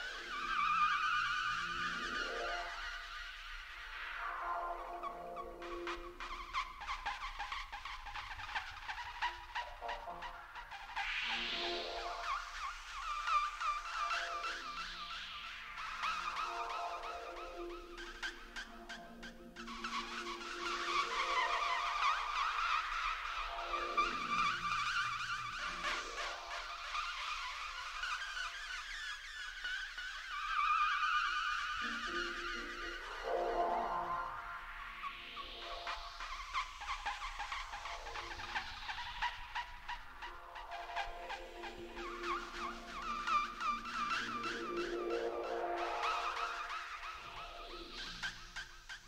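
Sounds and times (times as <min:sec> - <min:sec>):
high warbling electronic music: 0:00.0 - 0:49.0.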